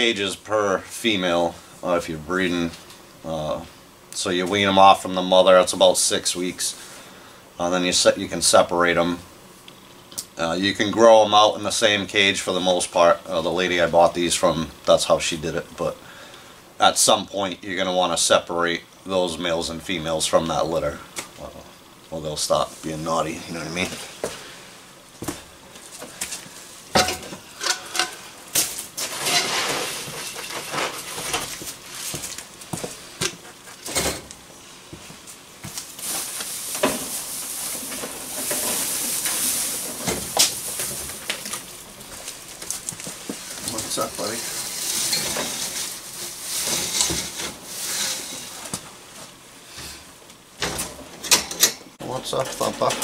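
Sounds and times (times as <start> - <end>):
hissing rustle: 35.2 - 48.8
rustling on straw: 35.6 - 42.4, 43.1 - 48.6.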